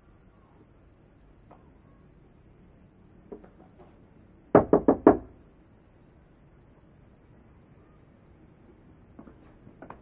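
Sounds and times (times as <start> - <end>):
knuckles knocking on wooden door: 4.5 - 5.3.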